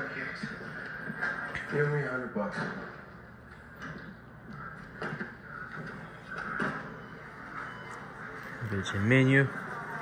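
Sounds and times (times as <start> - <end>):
television sound at low volume: 0.0 - 10.0.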